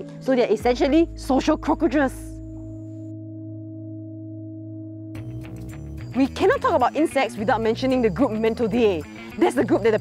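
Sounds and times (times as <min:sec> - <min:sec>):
sustained music chord: 0:02.3 - 0:06.8.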